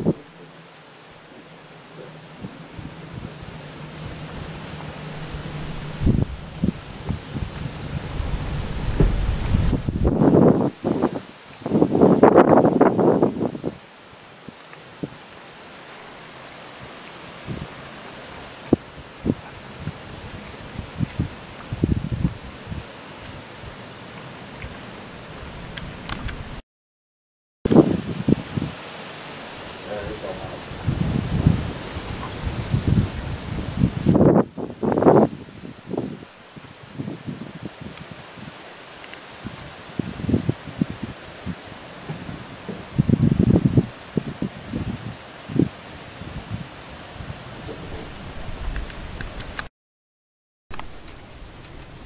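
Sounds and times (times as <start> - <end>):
rustling: 0.2 - 10.2
wind buffeting microphone: 2.0 - 13.8, 19.1 - 22.9, 29.9 - 38.6, 39.4 - 49.7.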